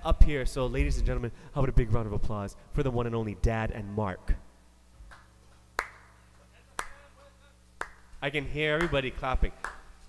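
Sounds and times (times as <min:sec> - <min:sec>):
person clapping: 0:05.1 - 0:06.2, 0:06.8 - 0:08.1, 0:08.8 - 0:09.9.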